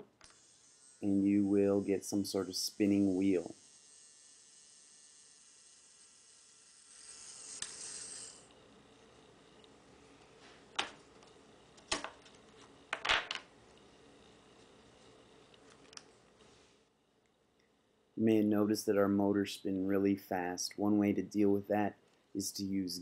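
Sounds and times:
small motor whirring: 0:00.2 - 0:09.8.

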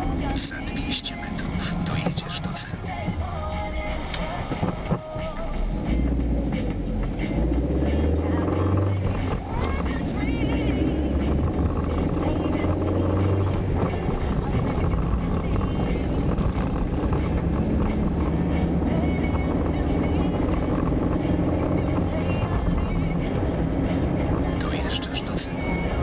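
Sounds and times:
car engine and road noise: 0:00.0 - 0:26.0.

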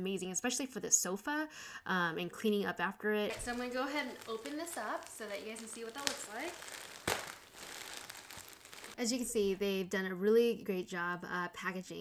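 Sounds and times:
plastic packaging crinkling: 0:03.3 - 0:09.0.

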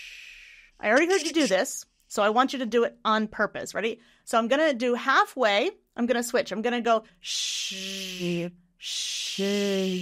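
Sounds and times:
woman hissing sh sound: 0:00.0 - 0:01.7, 0:07.2 - 0:10.0
woman buzzing zh sound: 0:07.3 - 0:10.0.

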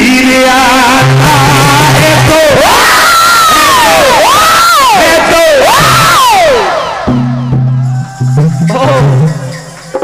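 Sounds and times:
man wailing into a microphone: 0:00.0 - 0:09.4.

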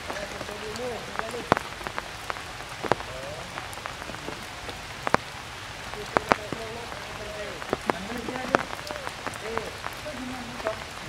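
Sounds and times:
heavy rain on foliage: 0:00.0 - 0:11.0
large raindrops splatting: 0:00.0 - 0:11.0.

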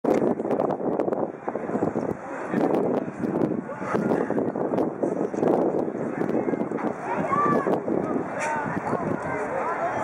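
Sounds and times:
wind on microphone: 0:00.0 - 0:10.0
faint spectator chatter: 0:01.2 - 0:10.0.

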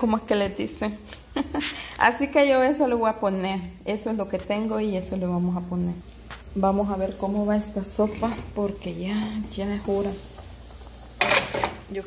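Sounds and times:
pot lid scraping clatter: 0:07.8 - 0:08.8, 0:09.8 - 0:11.9.

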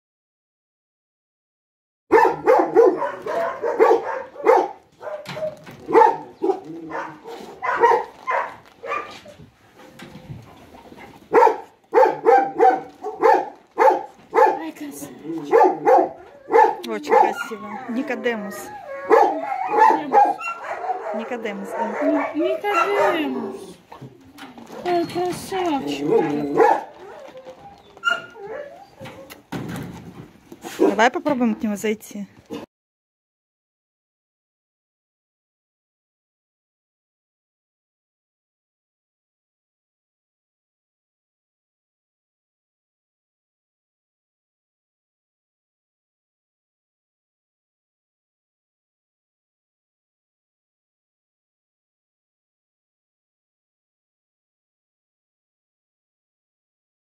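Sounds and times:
dog barking: 0:02.1 - 0:09.3, 0:11.3 - 0:14.7, 0:15.4 - 0:18.2, 0:19.0 - 0:23.6, 0:26.1 - 0:27.1, 0:30.7 - 0:31.0
dog whining: 0:15.4 - 0:29.5.

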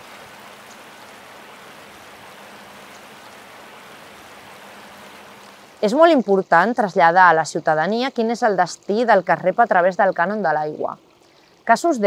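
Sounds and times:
river flowing over stones: 0:00.0 - 0:06.2.

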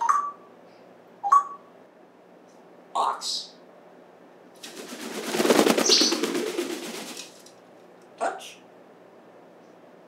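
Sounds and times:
parrot wings flapping: 0:04.6 - 0:07.6.

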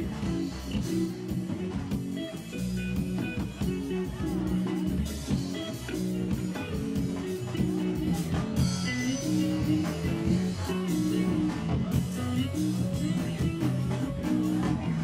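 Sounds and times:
drum kit: 0:00.0 - 0:15.0
electric guitars playing a riff: 0:00.0 - 0:15.0.

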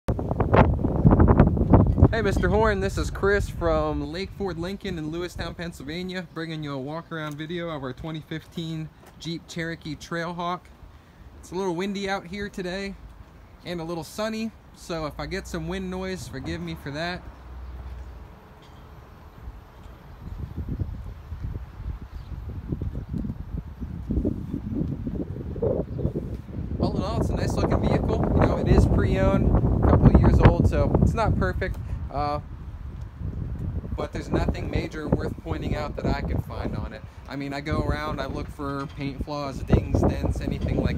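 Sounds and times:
wind buffeting microphone: 0:00.1 - 0:06.2, 0:15.2 - 0:40.9.

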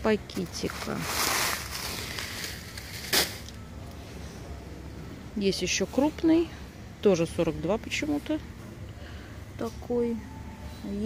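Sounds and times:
plastic packets rustling: 0:00.3 - 0:03.6.

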